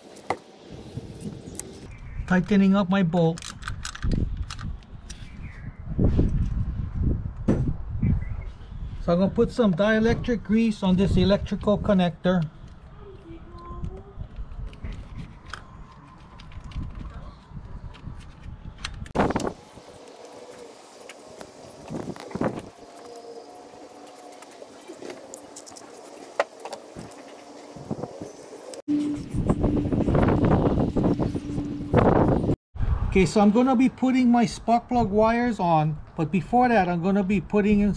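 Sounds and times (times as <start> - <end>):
plastic parts clicking: 3.3 - 4.9.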